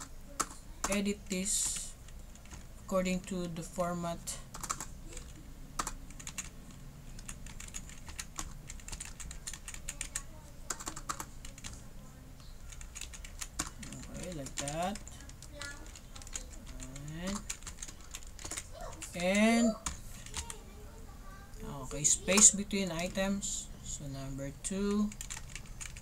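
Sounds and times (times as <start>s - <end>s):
computer keyboard typing: 0.0s - 3.5s, 4.4s - 20.6s, 24.6s - 26.0s
person making wordless sounds: 13.7s - 17.6s, 18.6s - 20.4s.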